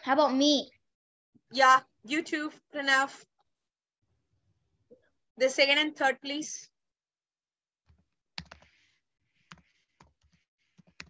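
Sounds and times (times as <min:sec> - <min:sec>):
computer keys or mouse clicks: 0:07.9 - 0:08.8.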